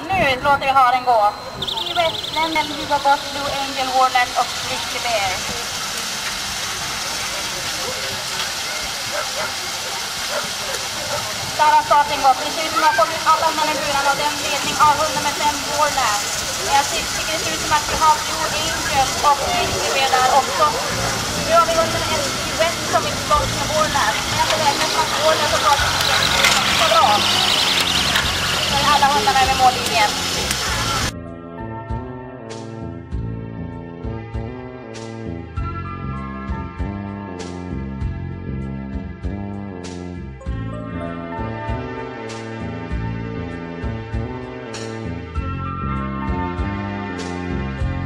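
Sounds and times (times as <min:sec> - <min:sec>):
spectators shouting and cheering: 0:01.5 - 0:31.1
steady rushing hiss: 0:01.5 - 0:31.1.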